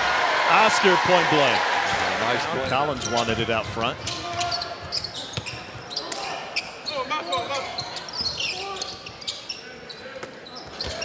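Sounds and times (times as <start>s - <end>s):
players and crowd voices: 0.0s - 11.0s
sneaker squeaks: 4.0s - 11.0s.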